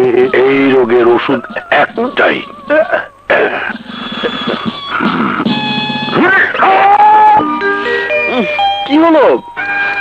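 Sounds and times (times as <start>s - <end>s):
man yelling and crying out: 6.1s - 7.5s.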